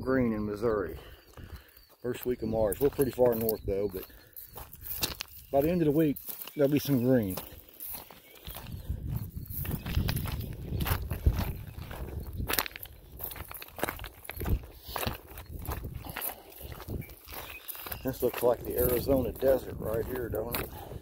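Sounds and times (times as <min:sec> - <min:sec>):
footsteps crunching on stones: 0:00.7 - 0:21.0.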